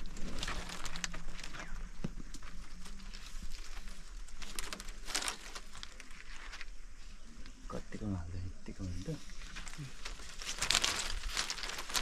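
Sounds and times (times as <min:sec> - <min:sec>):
leaves rustling: 0:00.0 - 0:12.0.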